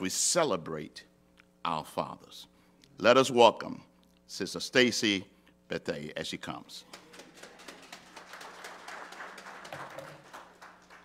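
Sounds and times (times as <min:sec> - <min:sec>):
congregation clapping: 0:06.8 - 0:11.0.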